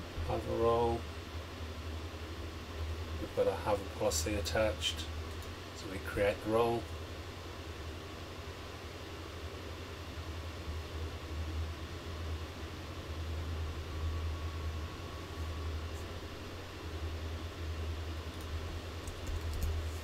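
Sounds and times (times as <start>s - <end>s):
faint microphone hiss: 0.0s - 20.0s
low hum: 0.0s - 20.0s.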